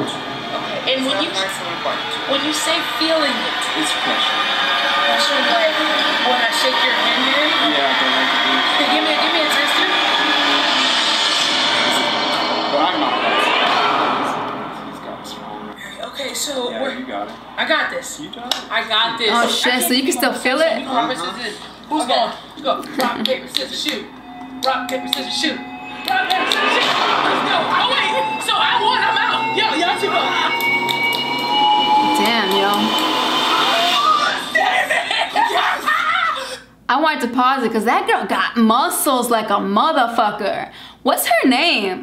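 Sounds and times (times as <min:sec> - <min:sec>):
background music: 0:00.0 - 0:35.6
people's voices: 0:00.0 - 0:36.6.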